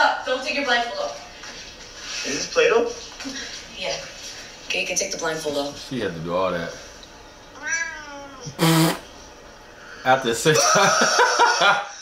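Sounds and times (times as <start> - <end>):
cat meowing: 7.6 - 8.9.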